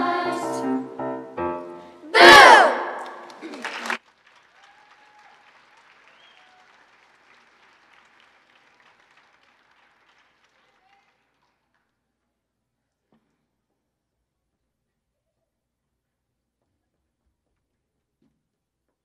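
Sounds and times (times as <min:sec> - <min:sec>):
children's choir screaming: 0:02.1 - 0:03.5
faint applause: 0:02.2 - 0:11.8.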